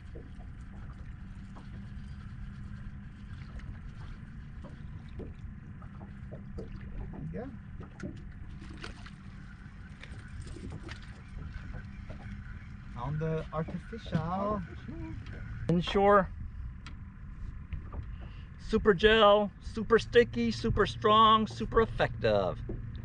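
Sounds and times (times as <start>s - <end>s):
steady low rumble: 0.0s - 23.0s
water lapping against boat hull: 0.0s - 23.0s.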